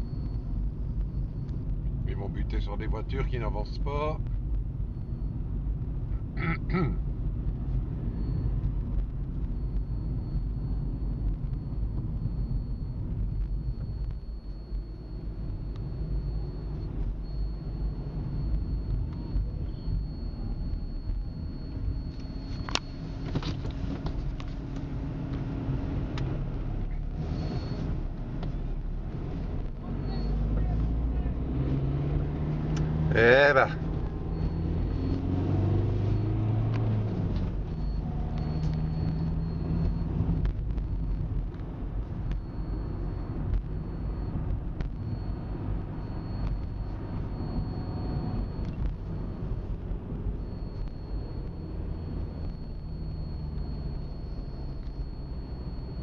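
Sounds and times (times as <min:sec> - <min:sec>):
road noise: 0:00.0 - 0:56.0
vehicle engine rumble: 0:00.0 - 0:56.0.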